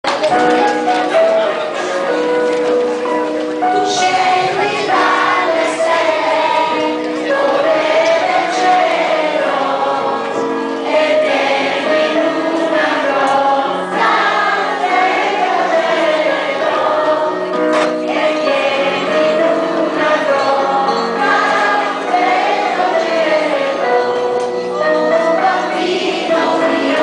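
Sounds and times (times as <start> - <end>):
children's choir singing: 0.2 - 27.0.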